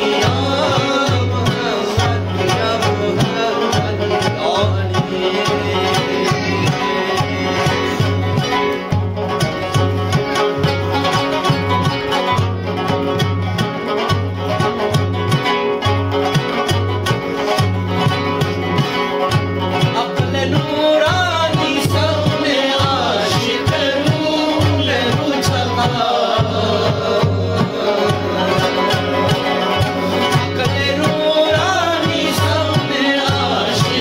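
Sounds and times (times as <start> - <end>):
frame drum steady rhythm: 0.0 - 34.0
plucked lute fast run: 0.0 - 34.0.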